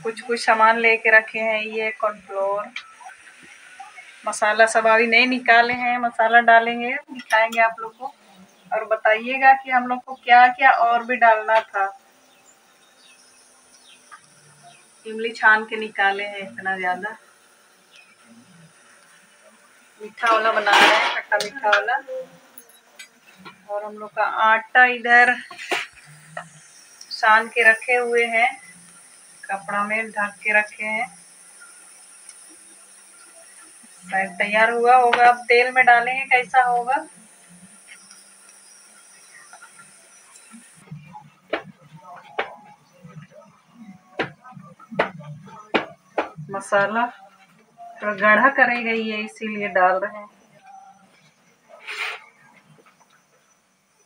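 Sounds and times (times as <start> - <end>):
low steady hum: 0.0 - 51.1
faint steady hiss: 0.0 - 54.0.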